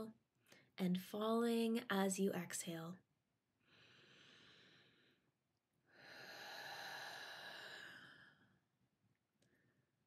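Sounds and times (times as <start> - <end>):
slow breathing close to microphone: 3.6 - 5.3, 5.9 - 8.6.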